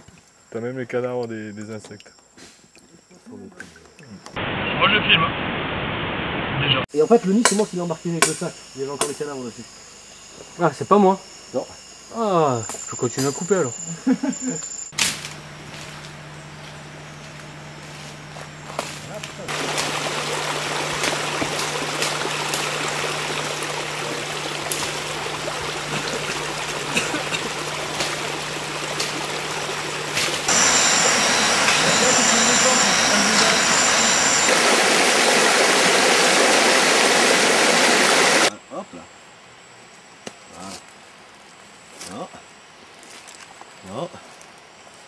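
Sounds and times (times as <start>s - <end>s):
flowing creek water: 19.4s - 38.5s
high broken tones: 22.5s - 38.5s.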